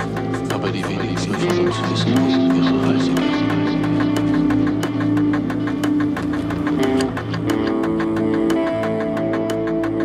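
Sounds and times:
drum beat: 0.0 - 10.0
held guitar chords: 0.0 - 10.0.

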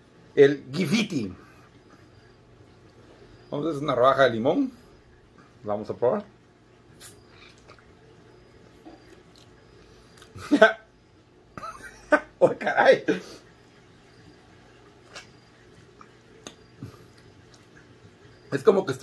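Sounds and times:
man biting and sucking lime: 6.9 - 7.9, 8.7 - 10.4, 14.9 - 17.9
mouth smacks and clicks: 7.0 - 7.9, 10.2 - 10.4, 15.0 - 15.4, 16.0 - 17.9.

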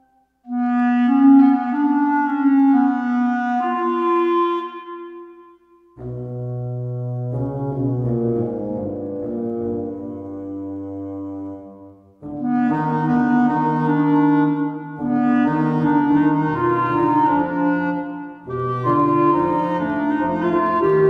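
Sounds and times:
woodwind ensemble music: 0.0 - 21.0.

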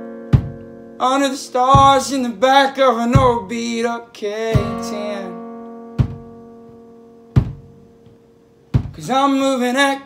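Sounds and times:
guitar chord ringing: 0.0 - 10.0
muted guitar percussive hits: 0.3 - 0.8, 1.7 - 2.2, 3.2 - 3.5, 4.6 - 5.0, 6.0 - 7.8, 8.8 - 9.0.

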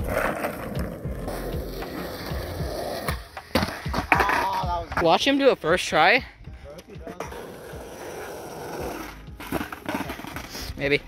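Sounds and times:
skateboard wheels rolling on asphalt: 0.0 - 5.3, 7.0 - 10.9.

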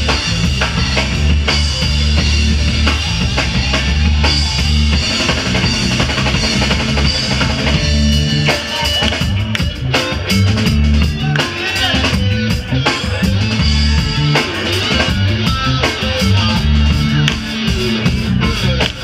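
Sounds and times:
drum kit: 0.0 - 19.0
electric guitars: 0.0 - 19.0
heavy bass line: 0.0 - 19.0
keyboards: 0.0 - 19.0.

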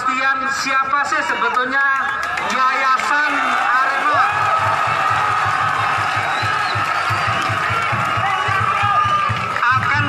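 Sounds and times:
crowd cheering and shouting: 0.0 - 10.0
fast low regular beat: 4.4 - 10.0.

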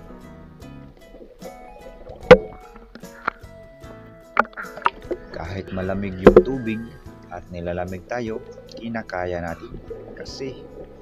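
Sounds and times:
background music sustained tones: 0.0 - 11.0
sharp knock: 2.3 - 2.6.

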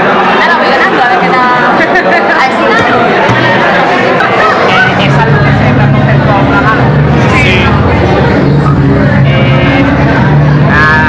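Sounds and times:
many people talking: 0.0 - 11.0
steady low hum: 4.7 - 11.0.

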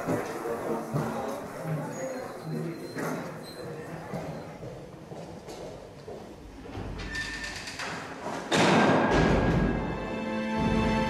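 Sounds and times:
footsteps on stone floor: 0.0 - 6.9
loud music: 9.5 - 11.0.

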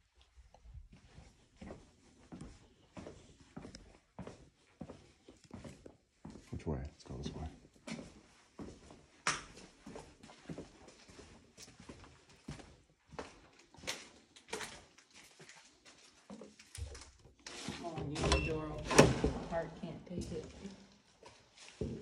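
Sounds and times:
footsteps on debris: 13.4 - 18.0.

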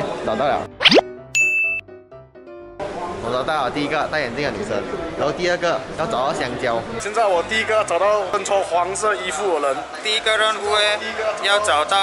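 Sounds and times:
jingle of quick notes: 0.8 - 1.8
bright high ding: 1.4 - 1.8.

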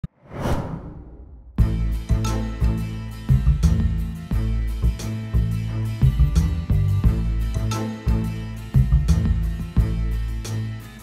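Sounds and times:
whoosh sound effect: 0.0 - 1.6
bass-heavy intro music: 1.6 - 11.0.

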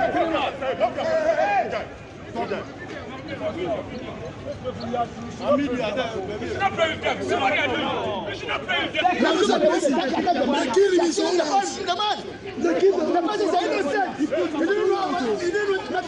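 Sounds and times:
people talking over one another: 0.0 - 16.0.

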